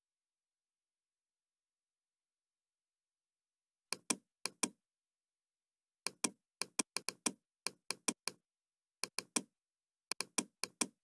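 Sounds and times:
computer mouse clicking: 3.9s - 4.8s, 6.1s - 8.4s, 9.0s - 9.5s, 10.1s - 11.0s.

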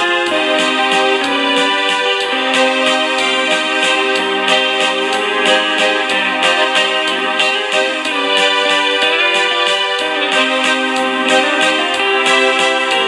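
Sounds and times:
electric guitar playing: 0.0s - 13.0s
keyboard playing chords over a beat: 0.0s - 13.0s.

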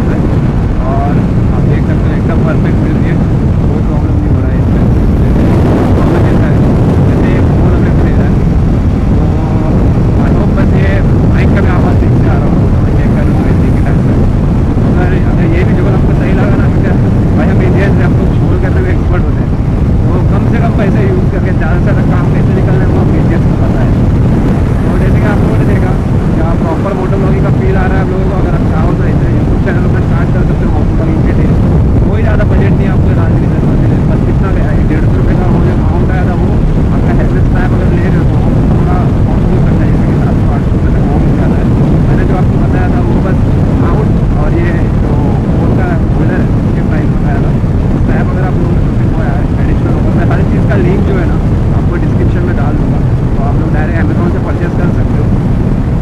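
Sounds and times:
wind rush: 0.0s - 56.0s.

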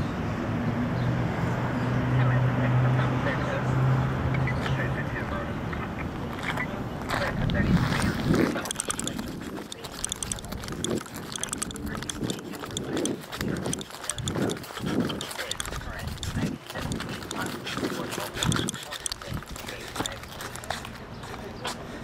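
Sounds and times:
footsteps on pavement: 6.2s - 22.0s
handheld camera clicks and rustle: 6.3s - 21.9s.

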